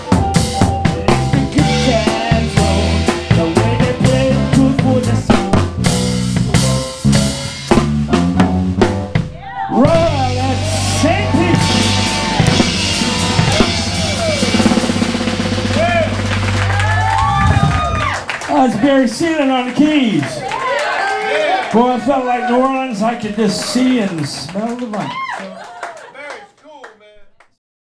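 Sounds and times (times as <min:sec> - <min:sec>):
rapid drum strikes: 0:00.0 - 0:18.8
live band playing: 0:00.0 - 0:20.6
held final chord: 0:09.7 - 0:18.1.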